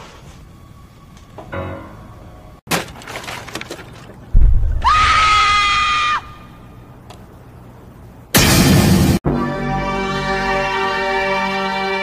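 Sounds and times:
deep thump: 4.3s - 5.1s
woman screaming: 4.8s - 6.5s.

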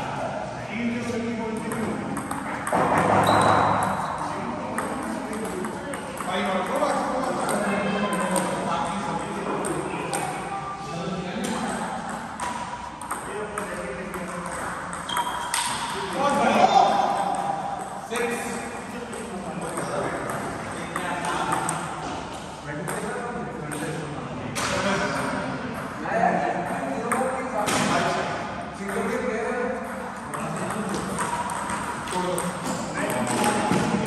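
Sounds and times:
table tennis ball clicking: 1.6s - 2.8s.

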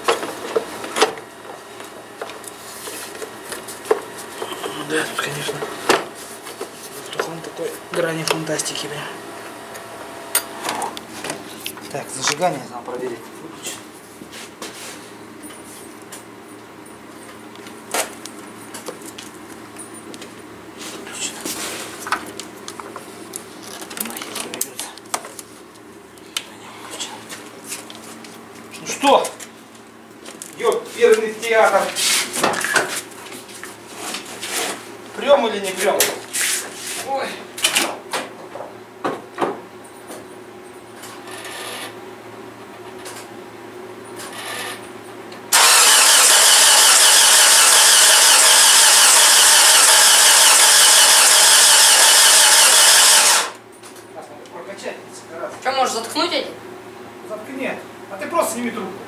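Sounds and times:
starter motor cranking: 45.5s - 53.6s.

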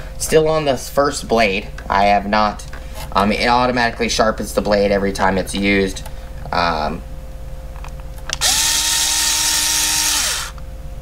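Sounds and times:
rotary cutter motor whining: 8.4s - 10.6s
spinning blade hiss: 8.4s - 10.6s.

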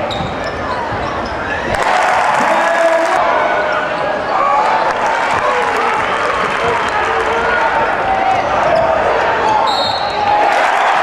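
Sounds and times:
crowd and player voices: 0.0s - 11.0s.

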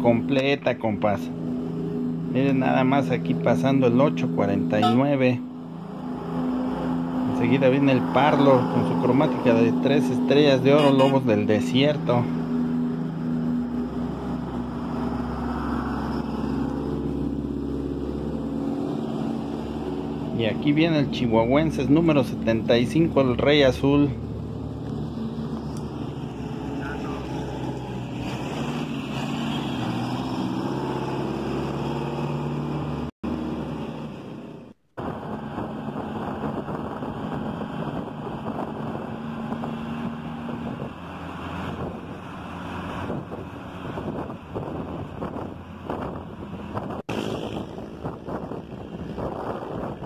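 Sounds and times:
road and wind noise: 0.0s - 50.0s
bus engine running: 11.8s - 50.0s.

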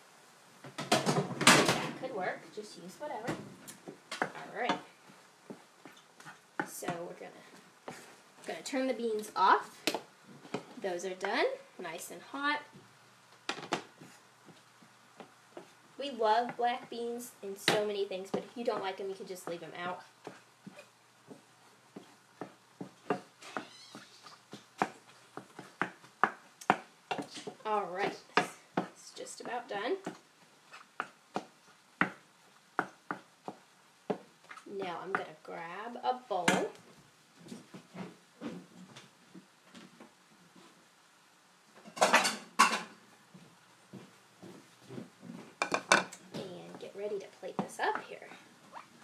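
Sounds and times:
dishes knocking and clattering: 0.7s - 1.9s, 41.8s - 43.0s, 45.6s - 46.2s
wooden spoon knocking in metal pan: 45.6s - 46.2s.

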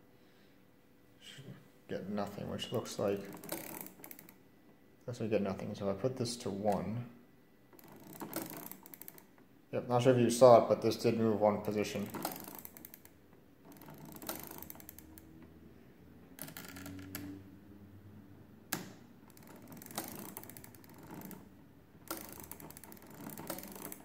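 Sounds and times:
mechanism clicking: 3.0s - 4.4s, 7.7s - 9.5s, 11.6s - 15.6s, 18.7s - 24.0s.

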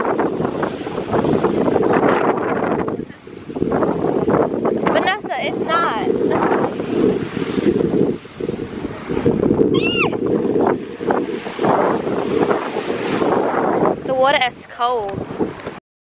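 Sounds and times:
wind buffeting microphone: 0.0s - 15.8s.

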